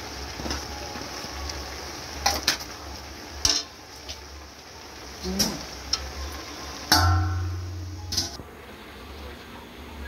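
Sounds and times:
wok ringing: 0:03.4 - 0:03.8, 0:05.4 - 0:08.4
metal ladle knocking on wok: 0:06.9 - 0:08.4.

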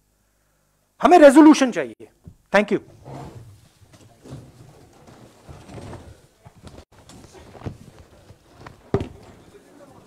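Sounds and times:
faint knocks and shuffles: 0:02.2 - 0:10.0.

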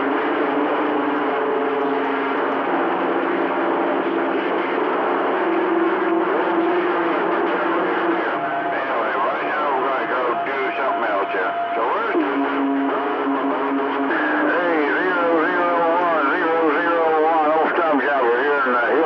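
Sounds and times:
steady radio tones: 0:00.0 - 0:19.0
garbled voices over radio: 0:06.7 - 0:19.0.

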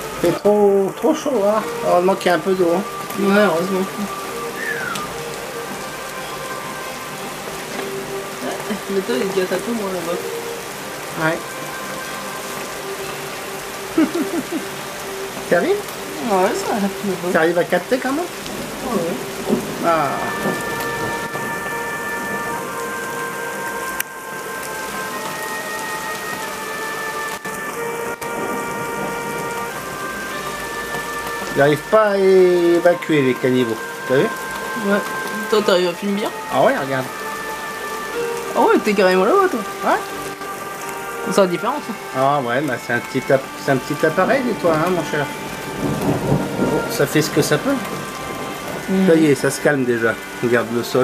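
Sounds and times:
rain on wet pavement: 0:00.0 - 0:51.0.

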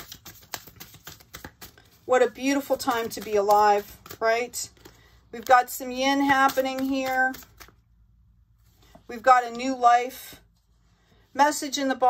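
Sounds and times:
cards clicking and tapping: 0:00.0 - 0:07.8.

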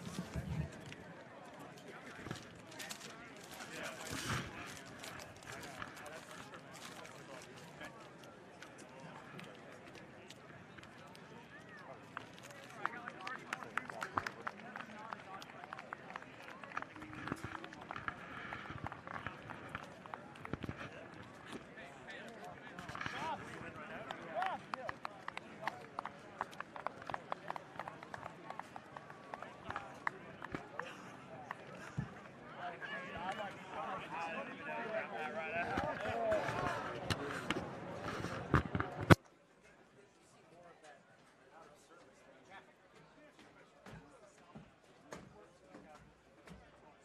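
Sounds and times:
many people talking: 0:00.0 - 0:47.0.

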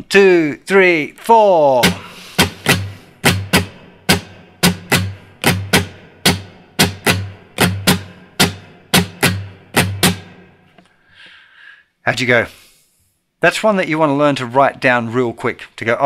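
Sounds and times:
acoustic guitar strumming: 0:01.7 - 0:10.8.

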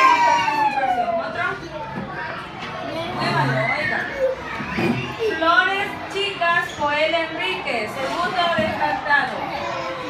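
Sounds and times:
classroom chatter: 0:00.0 - 0:10.0.

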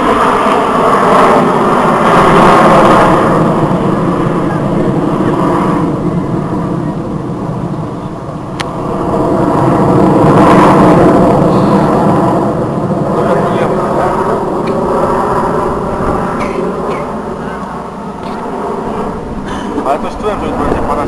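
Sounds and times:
jet engines flying overhead: 0:00.0 - 0:21.0.

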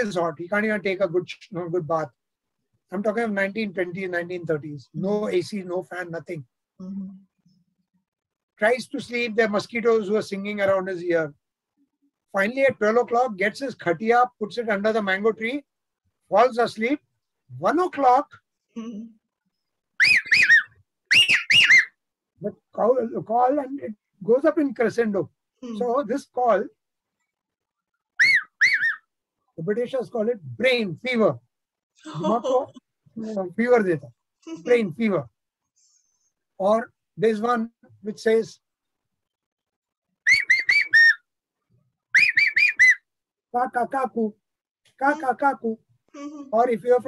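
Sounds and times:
man whistling bird call: 0:20.0 - 0:21.9, 0:40.3 - 0:41.2, 0:42.2 - 0:43.0.

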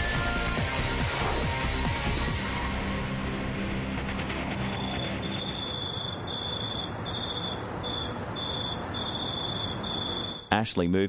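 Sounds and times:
insect trilling in pulses: 0:04.6 - 0:10.5.

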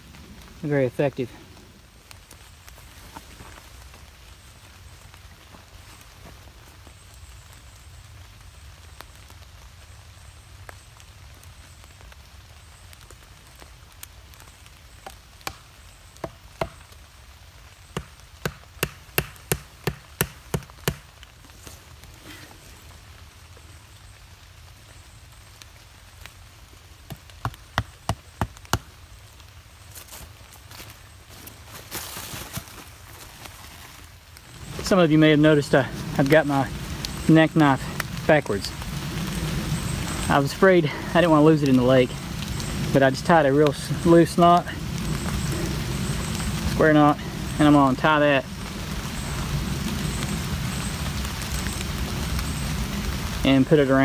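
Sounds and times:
mallet knocking tent stakes: 0:18.0 - 0:21.0.

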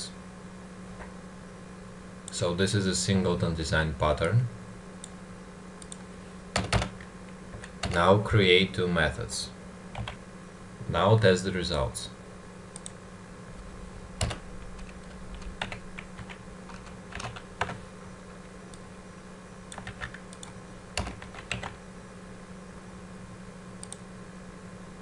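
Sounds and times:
steady low hum: 0:00.0 - 0:25.0
computer keyboard keystrokes: 0:06.6 - 0:08.0, 0:09.9 - 0:10.2, 0:14.2 - 0:17.8, 0:19.7 - 0:21.8, 0:23.8 - 0:24.0.

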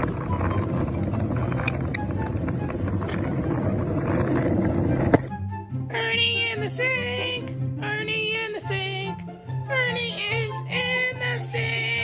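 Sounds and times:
longboard wheels rolling on asphalt: 0:00.0 - 0:08.3.

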